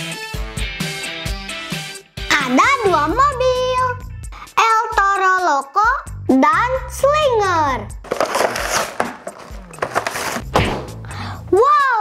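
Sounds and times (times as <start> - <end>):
light background music: 0.0 - 12.0
toy packaging crackling: 8.0 - 10.5.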